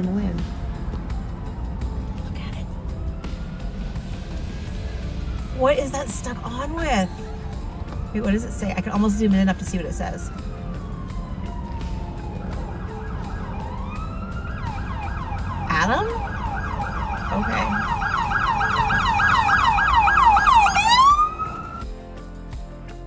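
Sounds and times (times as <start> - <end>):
emergency vehicle siren: 0.0 - 21.9.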